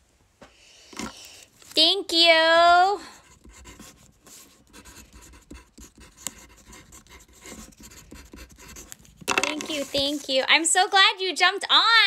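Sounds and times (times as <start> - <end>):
pen writing on paper: 3.2 - 10.2.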